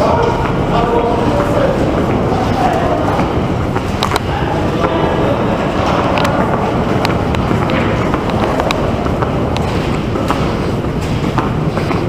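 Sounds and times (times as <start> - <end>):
footstep clicks: 0.0 - 12.0
low rumble of station concourse: 0.0 - 12.0.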